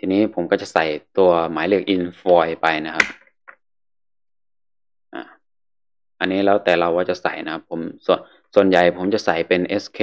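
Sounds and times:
man saying uh: 5.2s - 5.4s.

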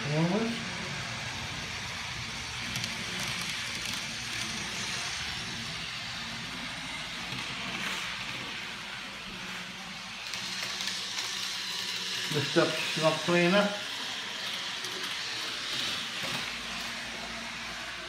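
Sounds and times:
model trains rolling on track: 0.0s - 18.0s.

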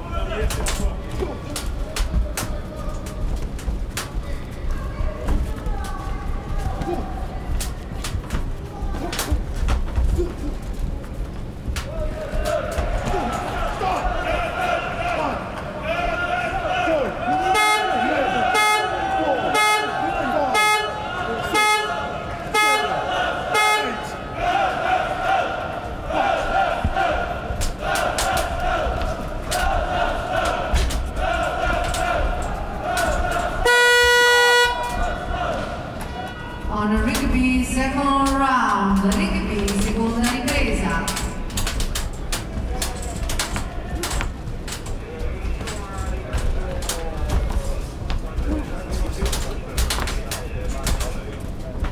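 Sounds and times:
crowd noise: 0.0s - 51.9s
fans blowing horns: 11.9s - 41.2s
buzzer: 17.6s - 18.0s, 18.6s - 19.0s, 19.6s - 20.0s, 20.6s - 22.0s, 22.6s - 23.0s, 33.7s - 34.8s.

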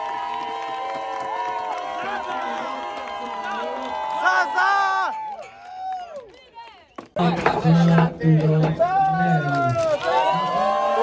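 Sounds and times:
crowd shouting and cheering: 0.0s - 11.0s
crowd voices: 6.7s - 11.0s.

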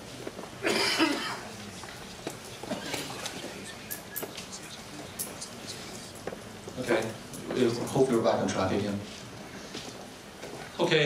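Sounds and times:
person coughing: 0.6s - 1.5s.

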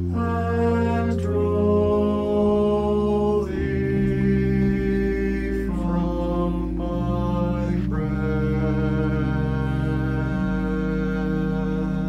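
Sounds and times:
mixed choir singing a hymn: 0.1s - 12.0s.

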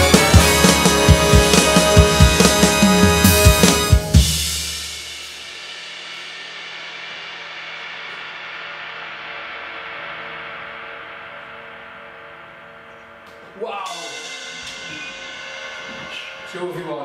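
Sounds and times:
cymbals ringing out: 0.0s - 17.0s
drum kit crash: 0.0s - 17.0s.

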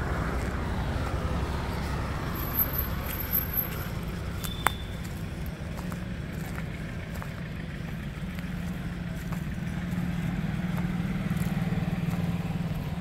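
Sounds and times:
engine idling: 0.0s - 13.0s.

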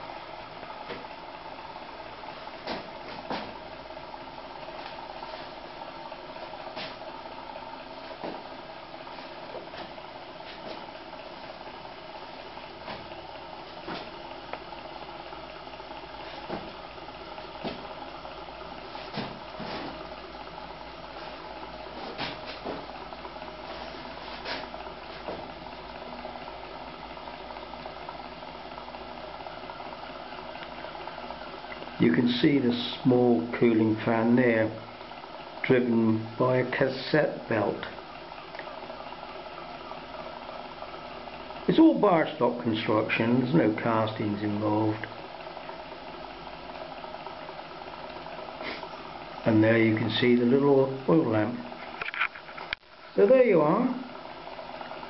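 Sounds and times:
engine whirr: 0.0s - 52.9s.

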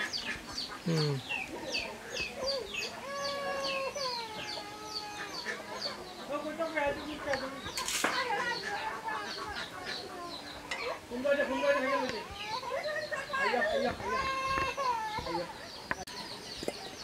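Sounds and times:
chicks peeping: 0.0s - 17.0s.

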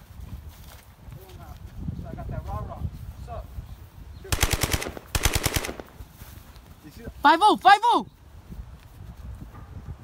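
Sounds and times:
automatic gunfire bursts: 4.3s - 6.0s.

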